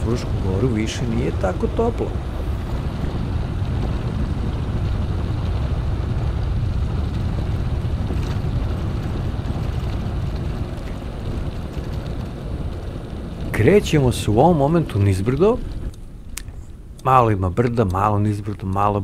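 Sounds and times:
tyres rumbling on gravel: 0:00.0 - 0:19.0
wind buffeting microphone: 0:00.0 - 0:19.0.

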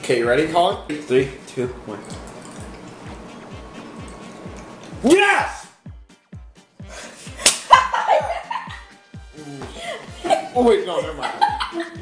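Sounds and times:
music with thumping beat: 0:05.8 - 0:12.0
sharp hand slap: 0:07.4 - 0:07.7.

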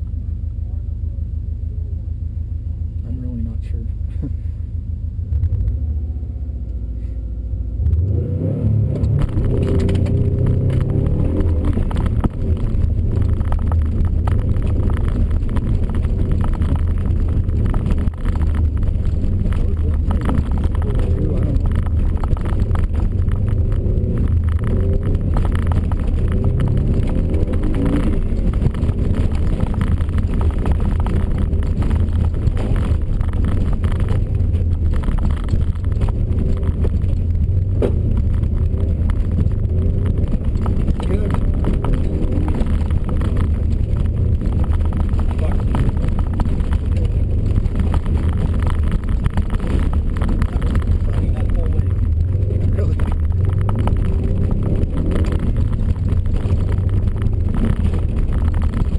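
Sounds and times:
car engine revving from cabin: 0:07.7 - 0:14.8.

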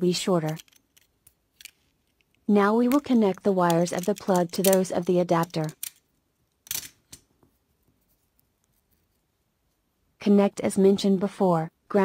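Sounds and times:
wire handling noise: 0:00.4 - 0:09.2.

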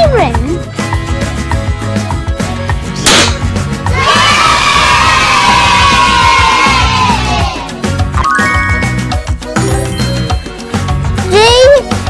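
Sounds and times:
background music: 0:00.0 - 0:12.0
sharp pop: 0:03.0 - 0:03.6
children cheering and shouting: 0:03.9 - 0:07.8.

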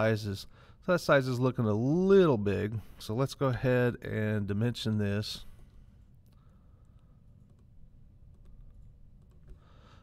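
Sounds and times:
low background hum: 0:00.0 - 0:10.0
computer mouse clicks: 0:06.2 - 0:09.7.

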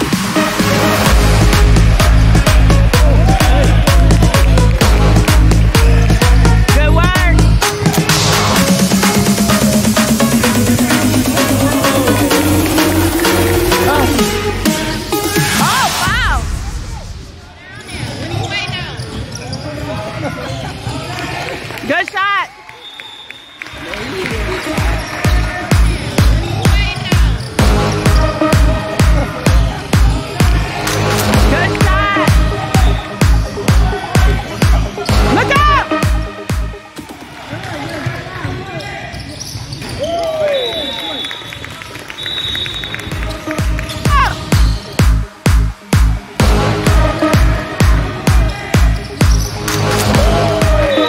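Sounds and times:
dance music with steady beat: 0:00.0 - 0:16.6, 0:24.7 - 0:36.8, 0:43.0 - 0:51.0
players' voices: 0:00.2 - 0:22.8, 0:23.6 - 0:51.0
echoing voices: 0:09.2 - 0:16.5
sneakers squeaking on floor: 0:17.8 - 0:21.0, 0:24.4 - 0:31.0, 0:32.3 - 0:35.3, 0:36.1 - 0:45.5, 0:48.1 - 0:51.0.

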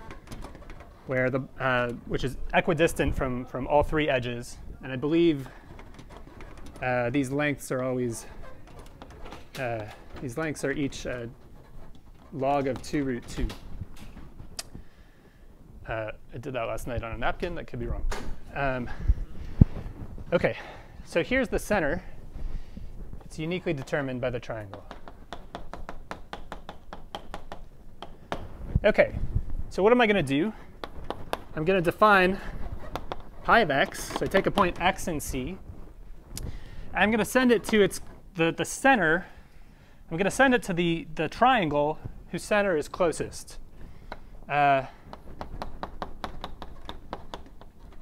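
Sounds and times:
chalk tapping on blackboard: 0:24.7 - 0:28.5, 0:45.1 - 0:48.0.

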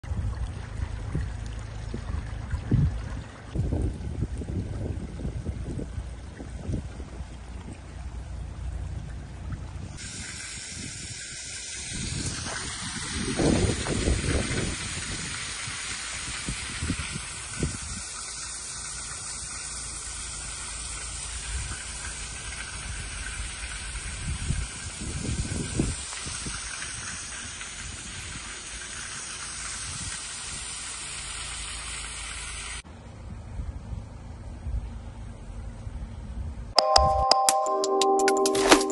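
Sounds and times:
floodwater gushing hiss: 0:00.1 - 0:32.8.

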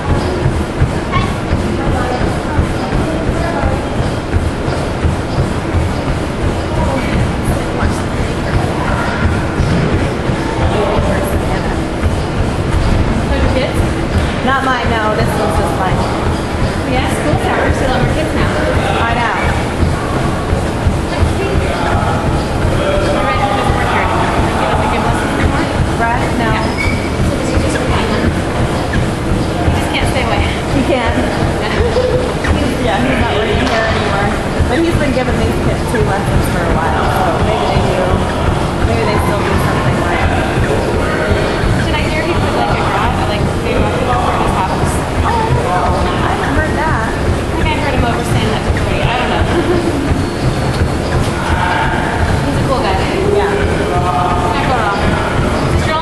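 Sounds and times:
indistinct background voices: 0:00.0 - 0:56.0
indoor court din: 0:00.0 - 0:56.0
loud low rumble: 0:00.0 - 0:56.0
shoes squeaking on floor: 0:00.1 - 0:15.0, 0:25.4 - 0:53.2.

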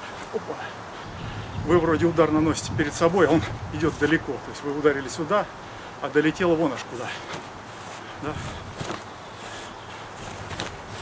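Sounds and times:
shuffling footsteps: 0:06.8 - 0:11.0.

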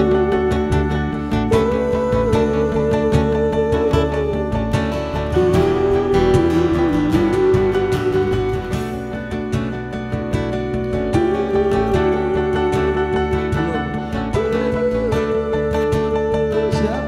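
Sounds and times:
stage keyboard: 0:00.0 - 0:17.0
strummed acoustic guitars: 0:00.0 - 0:17.0
wavering melody line: 0:00.0 - 0:17.0.

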